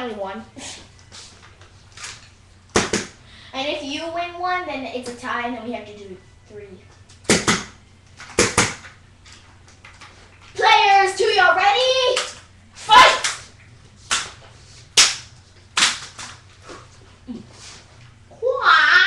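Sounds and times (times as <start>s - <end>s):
girl calling out: 12.8s - 13.3s.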